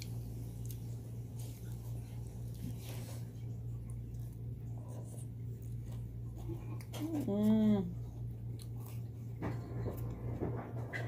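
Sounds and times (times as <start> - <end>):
person chewing food: 0.0 - 10.1.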